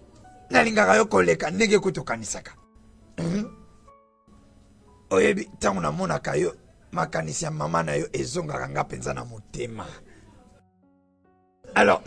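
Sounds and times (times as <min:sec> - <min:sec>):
faint soft background music: 0:00.0 - 0:12.0
man clearing throat: 0:03.2 - 0:03.6.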